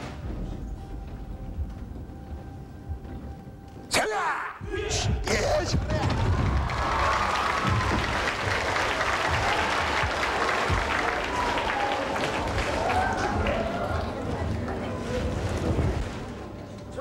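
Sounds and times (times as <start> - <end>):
audience applauding: 6.1 - 14.8.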